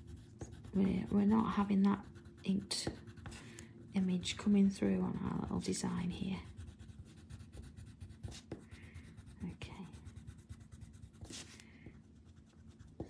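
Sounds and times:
pencil scratching on paper: 0.0s - 13.0s.

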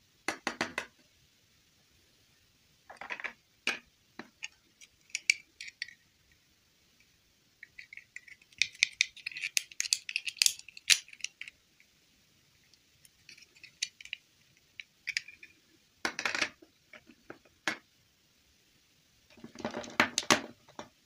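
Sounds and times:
plastic dolls clicking and tapping: 2.9s - 6.0s, 7.6s - 11.6s, 13.3s - 15.5s
plastic dolls clattering: 7.8s - 11.5s.

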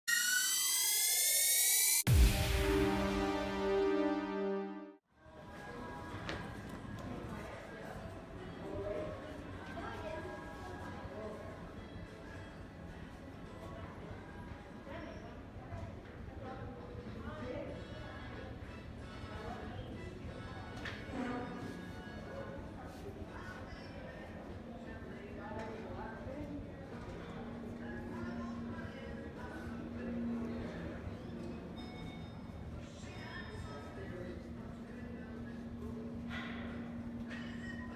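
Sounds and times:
high buzzing tone: 0.1s - 4.9s
music playing: 0.1s - 5.0s.

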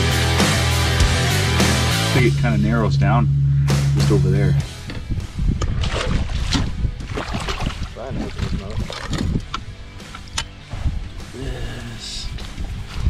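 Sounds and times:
background music: 0.0s - 13.0s
fish splashing in water: 5.6s - 9.2s.

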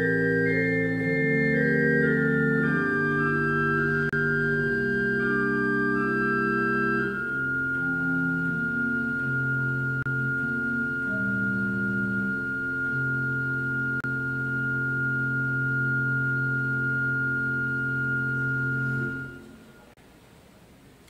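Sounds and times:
church organ chords: 0.0s - 20.0s.

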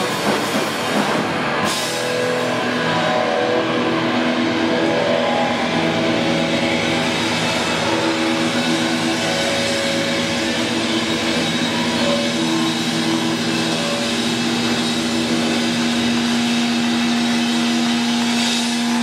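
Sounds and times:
distorted electric guitar drone: 0.0s - 19.0s.

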